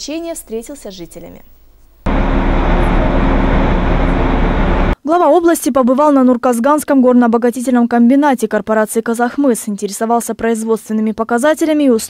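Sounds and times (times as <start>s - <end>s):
loud machinery din: 2.1s - 5.0s
low hum: 2.1s - 5.0s.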